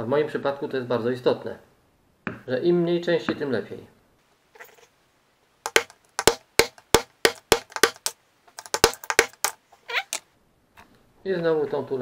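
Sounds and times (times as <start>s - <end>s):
hammer striking steel punch: 5.7s - 9.6s.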